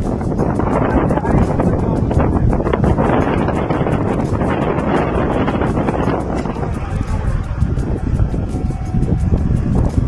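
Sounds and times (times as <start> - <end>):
wind blowing across microphone: 0.0 - 10.0.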